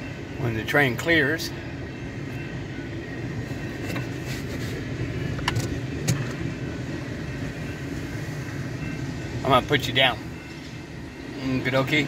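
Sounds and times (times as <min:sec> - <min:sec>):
train rolling with low rumble: 0:00.0 - 0:12.0.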